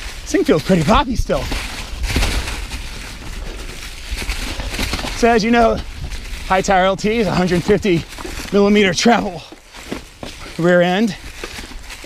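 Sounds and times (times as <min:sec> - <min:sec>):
bike crackles and knocks: 0:00.0 - 0:12.0
tyres crunching through leaves: 0:00.0 - 0:12.0.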